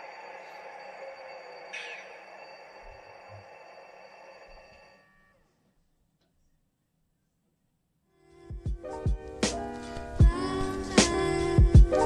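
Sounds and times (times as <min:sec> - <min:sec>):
model locomotive engine hum: 0:00.0 - 0:05.4.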